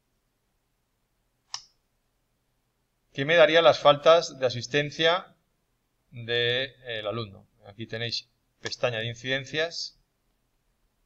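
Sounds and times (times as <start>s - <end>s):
computer mouse click: 1.5s - 1.8s.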